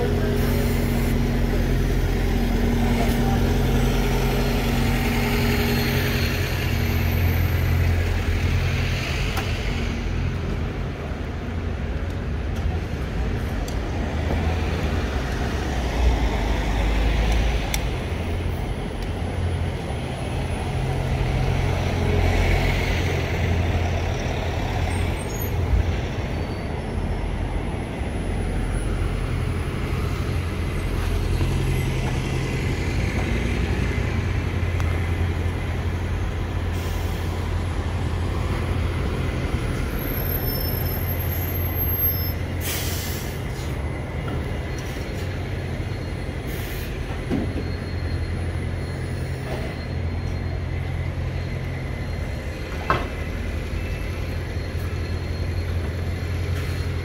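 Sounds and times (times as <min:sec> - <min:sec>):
bus engines passing: 0:00.0 - 0:57.0
air brakes hissing: 0:36.6 - 0:37.5, 0:42.1 - 0:43.8, 0:46.3 - 0:48.2.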